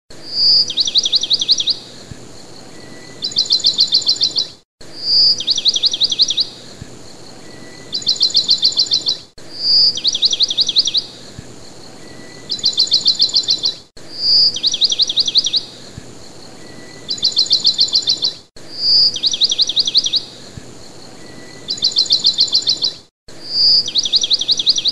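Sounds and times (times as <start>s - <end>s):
recorded bird song: 0.1s - 24.9s.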